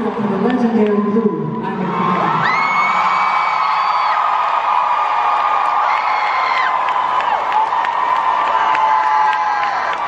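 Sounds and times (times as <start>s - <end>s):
crowd cheering and screaming: 0.8s - 10.0s
high scream: 1.9s - 10.0s.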